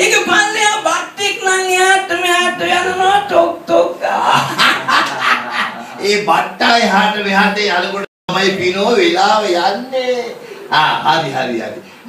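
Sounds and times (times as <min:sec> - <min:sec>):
man laughing into a microphone: 0:04.2 - 0:06.1.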